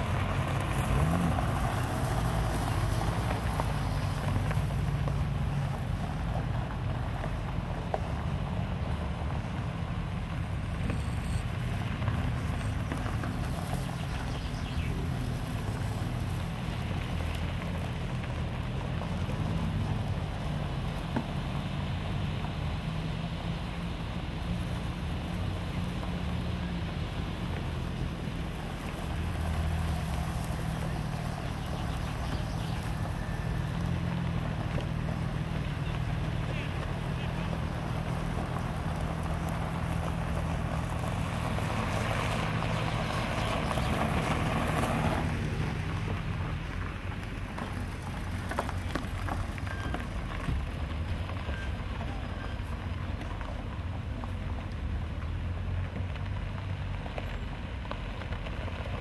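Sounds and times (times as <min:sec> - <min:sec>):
car engines running at low speed: 0:00.0 - 0:59.0
cars on gravel: 0:00.0 - 0:59.0.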